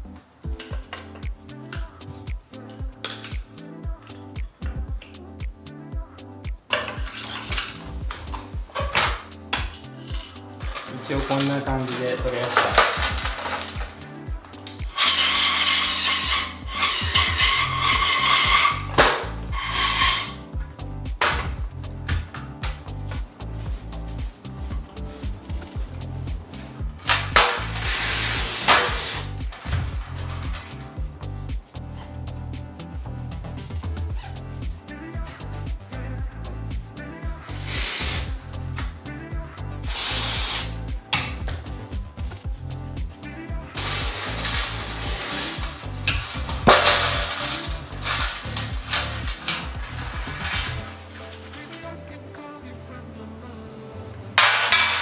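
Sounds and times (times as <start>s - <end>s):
background music: 0.0s - 55.0s
aerosol spray hissing: 6.5s - 20.6s, 22.8s - 30.9s, 37.5s - 39.0s, 39.8s - 41.5s, 43.7s - 51.0s.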